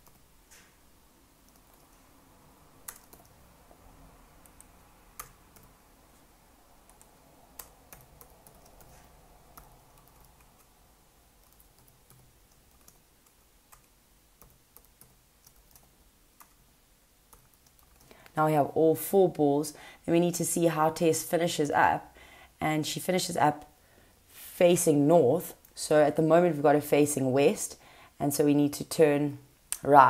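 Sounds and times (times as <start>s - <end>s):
faint keyboard typing: 0.0s - 0.8s, 1.4s - 2.1s, 2.8s - 18.4s.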